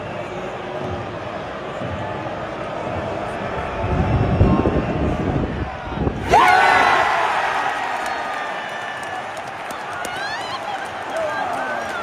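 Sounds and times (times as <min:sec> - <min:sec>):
stadium crowd rumble: 0:00.0 - 0:12.0.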